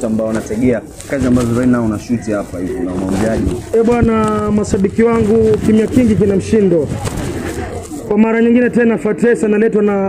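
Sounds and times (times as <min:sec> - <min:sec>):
man talking into a microphone: 0:00.0 - 0:10.0.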